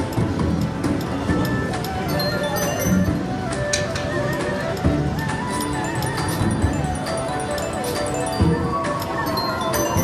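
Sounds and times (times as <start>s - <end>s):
slot machine music: 0.5s - 10.0s
slot machine reels clicking: 5.5s - 10.0s.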